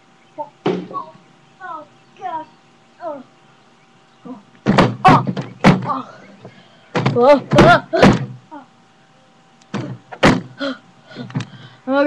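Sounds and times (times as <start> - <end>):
thumps: 4.6 - 8.4, 9.7 - 10.6.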